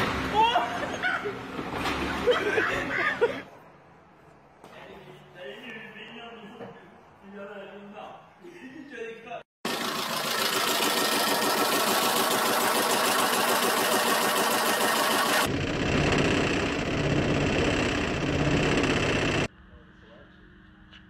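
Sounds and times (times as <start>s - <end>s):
car engine clattering: 15.2s - 19.5s.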